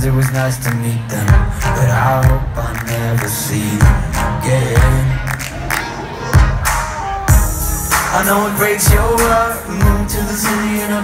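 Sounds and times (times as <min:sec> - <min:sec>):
crowd noise: 0:00.0 - 0:11.0
live pop song over sound system: 0:00.0 - 0:11.0.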